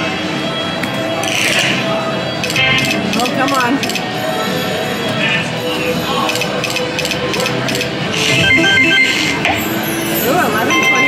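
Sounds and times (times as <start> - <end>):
electronic game music: 8.1 - 9.7, 10.7 - 11.0.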